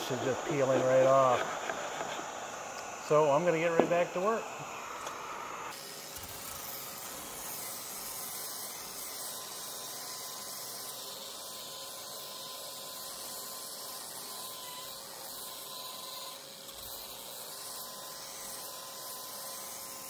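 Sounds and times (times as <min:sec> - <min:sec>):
orbital sander sanding wood: 0:00.0 - 0:20.0
vacuum hose drawing dust: 0:00.0 - 0:20.0.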